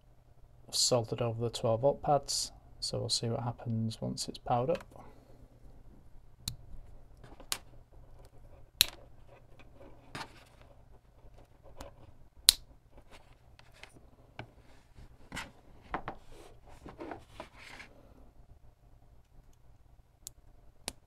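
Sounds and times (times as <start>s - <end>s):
handling noise: 13.0s - 17.9s.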